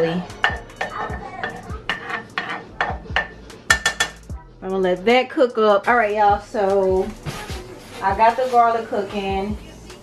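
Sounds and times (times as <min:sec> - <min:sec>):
spatula scraping metal pot: 0:00.0 - 0:04.3.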